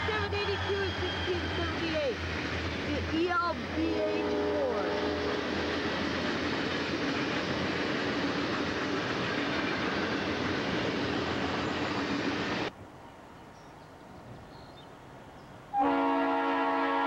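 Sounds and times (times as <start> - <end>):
freight train rolling past: 0.0 - 13.4.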